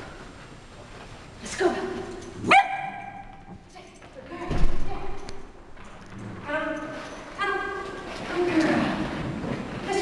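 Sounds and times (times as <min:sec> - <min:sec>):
dog barking: 0:02.5 - 0:03.3.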